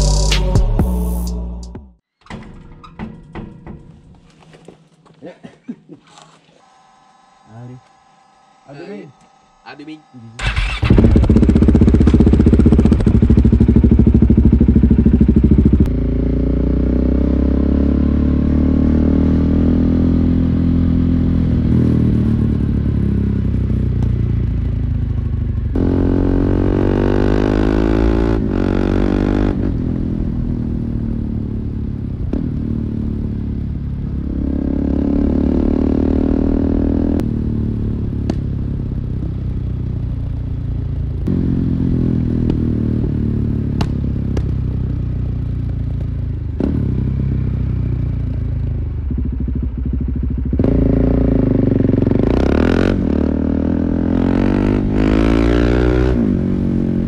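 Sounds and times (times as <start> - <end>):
motorcycle engine accelerating: 6.7 - 57.0.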